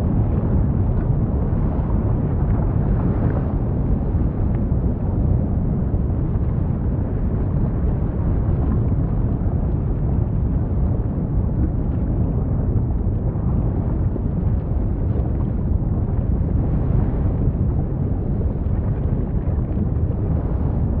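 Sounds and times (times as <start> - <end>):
deep lava rumble: 0.0 - 21.0.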